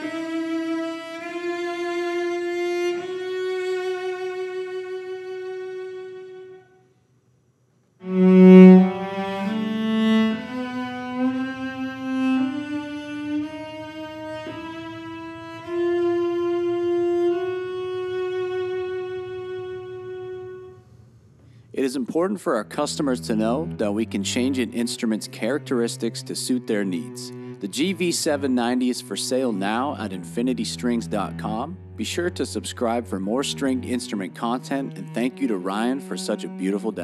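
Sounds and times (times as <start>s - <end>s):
bowed cello notes: 0.0s - 6.8s, 8.0s - 37.0s.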